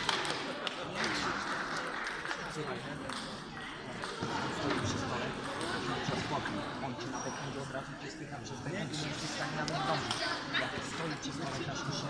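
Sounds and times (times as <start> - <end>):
table tennis balls bouncing: 2.0 - 6.4.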